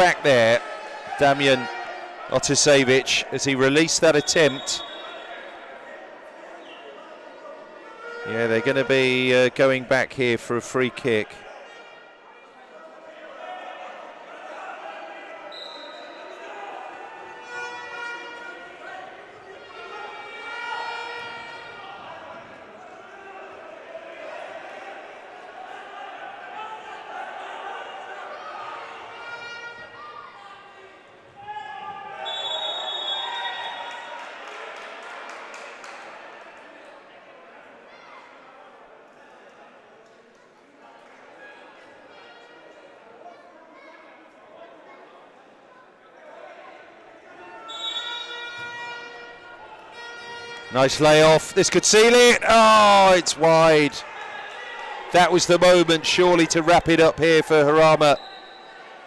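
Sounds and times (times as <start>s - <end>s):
people shouting in a hall: 0.0s - 3.3s, 4.0s - 9.3s, 11.3s - 59.0s.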